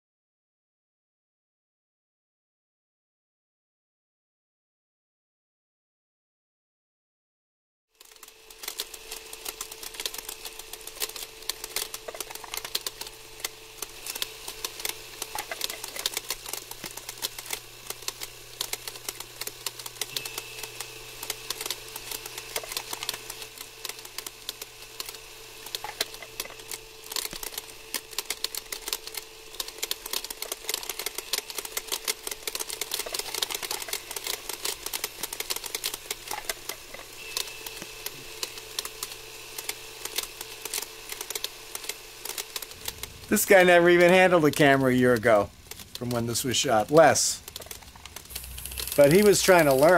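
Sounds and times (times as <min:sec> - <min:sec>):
faint high whine: 0:08.0 - 0:49.9
film clicking and crackle: 0:08.0 - 0:49.9
low hum: 0:08.3 - 0:49.9.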